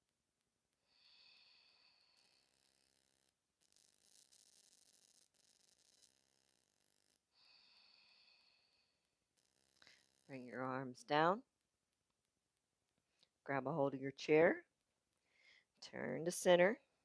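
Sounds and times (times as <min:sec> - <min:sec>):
faint slow breathing: 0:00.8 - 0:03.0, 0:07.3 - 0:10.3, 0:15.2 - 0:15.7.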